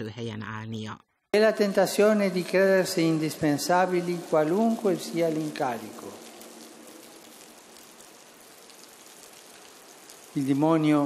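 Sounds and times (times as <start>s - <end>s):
faint steady hiss: 1.4s - 11.0s.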